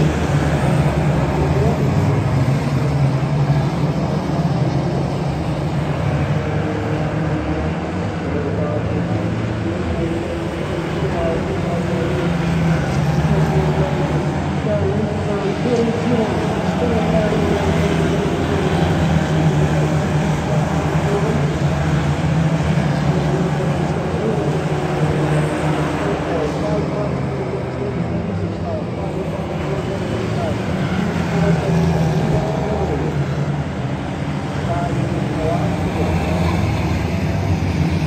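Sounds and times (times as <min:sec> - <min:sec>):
racing car engines revving: 0:00.0 - 0:38.0.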